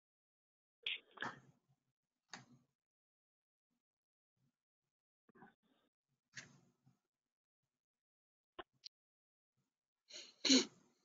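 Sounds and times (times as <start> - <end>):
person sneezing: 10.2 - 10.7.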